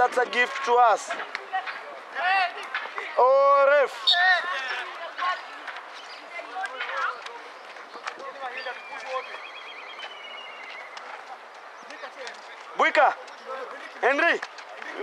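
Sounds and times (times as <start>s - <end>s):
voices calling out: 0.0s - 15.0s
loud shouts: 3.2s - 5.5s.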